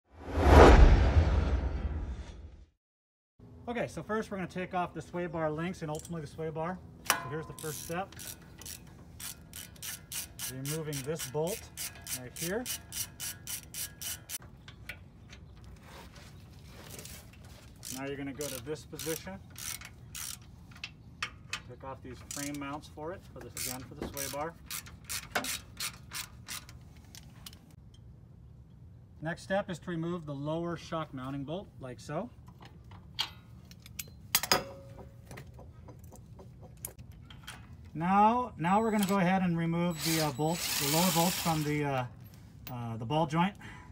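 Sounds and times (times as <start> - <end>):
ratchet wrench clicking: 7.1 - 14.5, 17.8 - 21.6, 22.2 - 22.6, 23.6 - 26.8.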